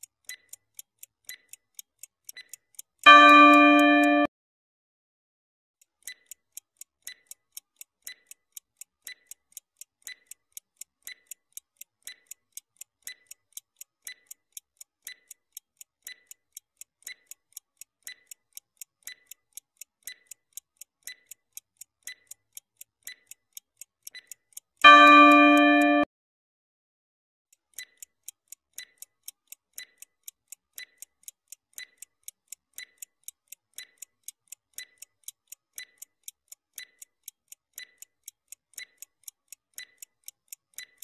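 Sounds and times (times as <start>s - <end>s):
clock ticks: 0.0s - 4.3s, 5.8s - 26.1s, 27.5s - 41.0s.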